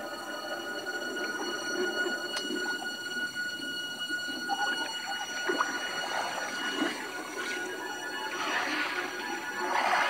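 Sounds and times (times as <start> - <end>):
sustained high tones: 0.0 - 10.0
muffled underwater wash: 0.7 - 10.0.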